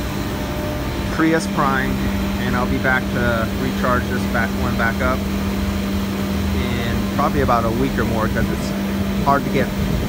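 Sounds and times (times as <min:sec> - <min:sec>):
mechanical hum: 0:00.0 - 0:10.0.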